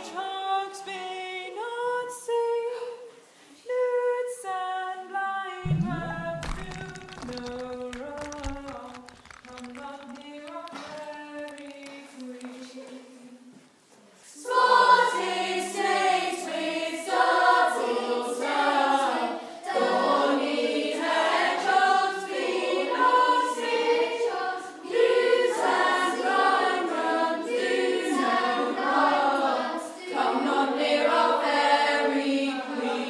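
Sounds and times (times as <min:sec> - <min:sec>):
group of voices singing: 0:14.4 - 0:33.0.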